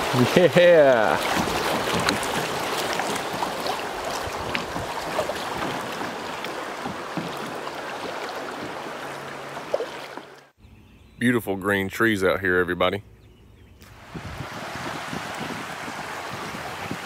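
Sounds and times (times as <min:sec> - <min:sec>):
creek water rushing and splashing: 0:00.0 - 0:10.6, 0:13.9 - 0:17.0
paddle splashes: 0:00.0 - 0:10.6, 0:13.8 - 0:17.0.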